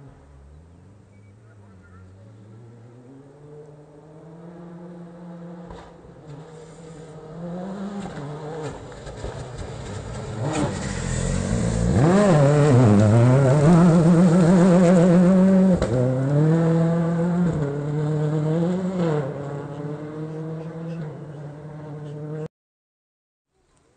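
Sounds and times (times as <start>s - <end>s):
rally car engine revving: 0.0s - 22.5s.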